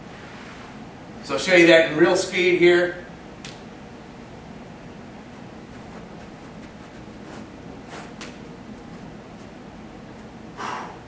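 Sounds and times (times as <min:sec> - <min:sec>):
steady room hiss: 0:00.0 - 0:11.0
soft taps and rustles: 0:05.3 - 0:10.4.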